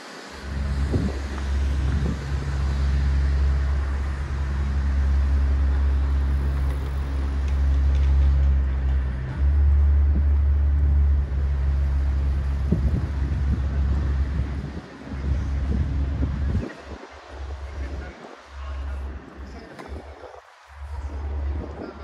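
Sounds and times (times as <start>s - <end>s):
city street hum: 0.0s - 22.0s
wind rumbling on microphone: 0.0s - 22.0s.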